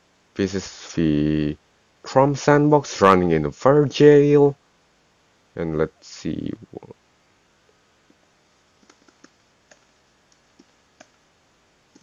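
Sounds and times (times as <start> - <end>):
computer keyboard keystrokes: 8.8 - 11.2.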